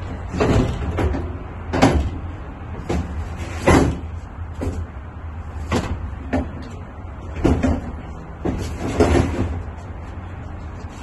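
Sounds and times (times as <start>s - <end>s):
heavy object clunking in van: 0.0s - 10.0s.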